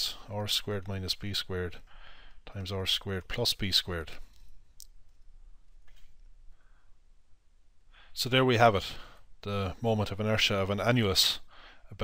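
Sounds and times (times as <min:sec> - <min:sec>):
faint sharp clicks: 0:04.3 - 0:06.3.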